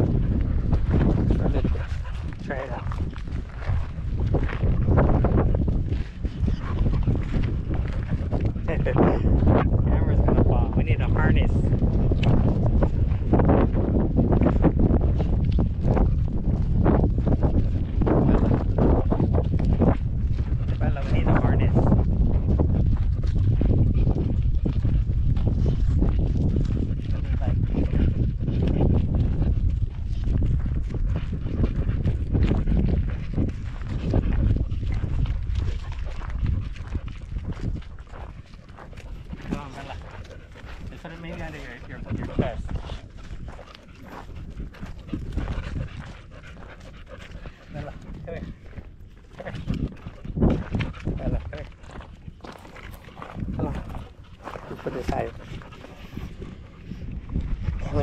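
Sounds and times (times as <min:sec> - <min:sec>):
dog sounds: 0:00.1 - 0:58.0.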